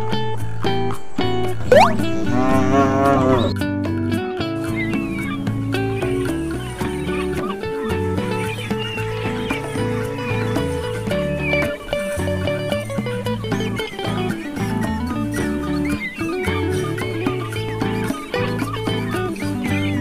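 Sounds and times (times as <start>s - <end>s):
background music: 0.0s - 20.0s
cow mooing: 2.0s - 3.5s.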